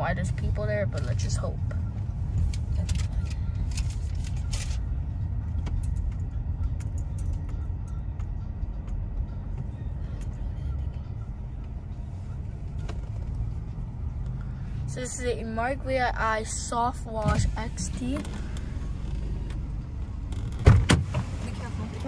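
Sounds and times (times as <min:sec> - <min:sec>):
car rolling rumble inside cabin: 0:00.0 - 0:22.0.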